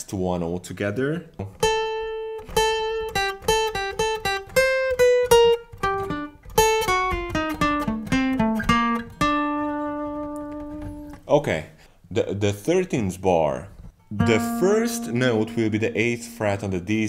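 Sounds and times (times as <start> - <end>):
acoustic guitar picked notes: 1.4 - 11.2, 13.9 - 17.0.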